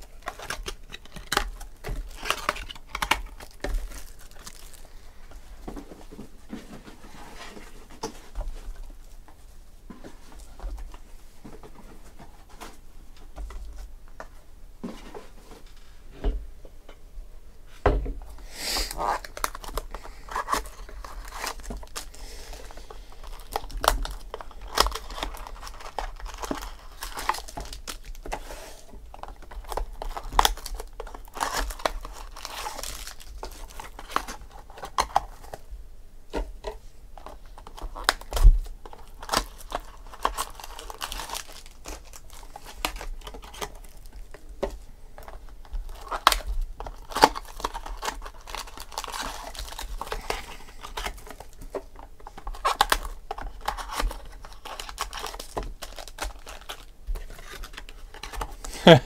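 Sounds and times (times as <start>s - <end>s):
plastic wrapper crinkling and tearing: 0.0s - 5.4s, 18.8s - 35.7s, 36.3s - 59.0s.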